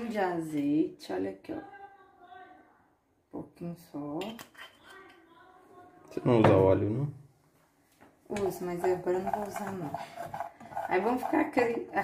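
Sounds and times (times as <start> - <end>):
kitchenware clinking: 8.3 - 12.0.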